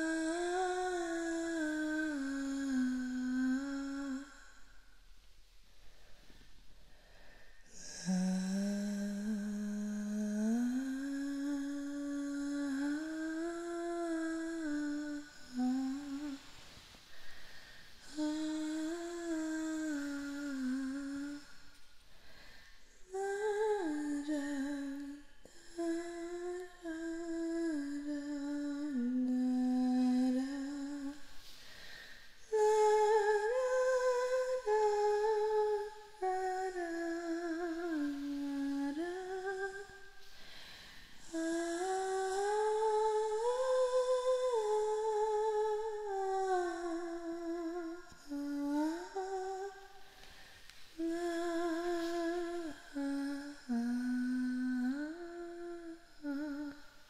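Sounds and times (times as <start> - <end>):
woman humming a slow melody: 0.0 - 4.7, 7.7 - 17.4, 18.0 - 21.8, 22.9 - 57.0
short breaths: 16.4 - 18.0, 21.5 - 23.1, 31.2 - 32.5, 40.1 - 41.2, 50.0 - 51.0.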